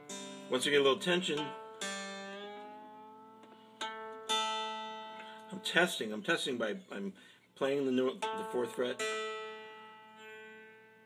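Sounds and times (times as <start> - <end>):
plucked dulcimer note: 0.0 - 5.6, 8.1 - 10.9.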